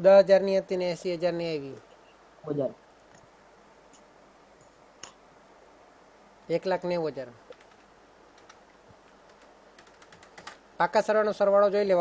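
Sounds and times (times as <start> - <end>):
keyboard typing: 7.4 - 10.6.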